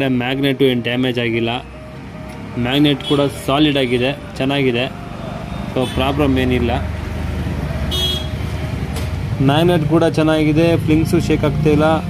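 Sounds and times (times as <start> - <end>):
high-pitched horn toot: 7.9 - 8.4.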